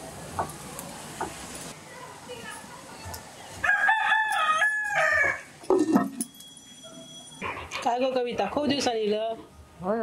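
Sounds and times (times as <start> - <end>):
rooster crowing: 3.6 - 5.5.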